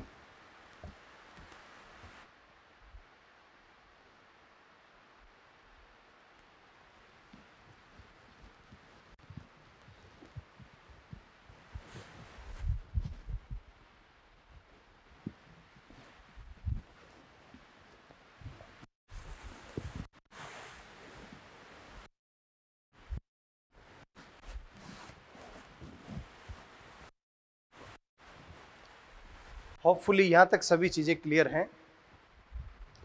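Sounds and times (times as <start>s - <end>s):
low room hiss: 0.0s - 20.0s
cloth duster wiping whiteboard: 19.2s - 21.4s, 24.4s - 27.1s.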